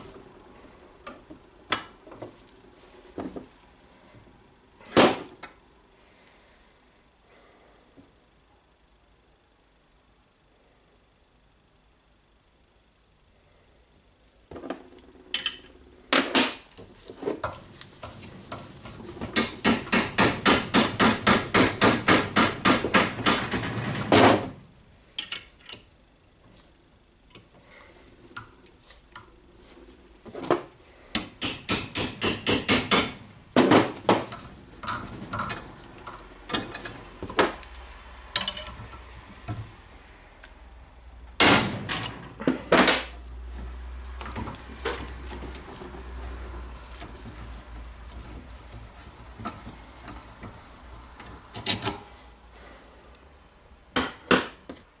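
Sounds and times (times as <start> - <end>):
hammer striking metal: 19.4 - 23.4, 31.2 - 33.2.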